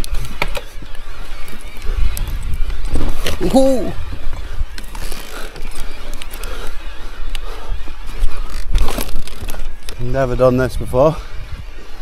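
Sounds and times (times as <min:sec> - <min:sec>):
bike knocks and rattles over bumps: 0:00.0 - 0:06.4
bike tyres rumbling on dirt trail: 0:00.0 - 0:12.0.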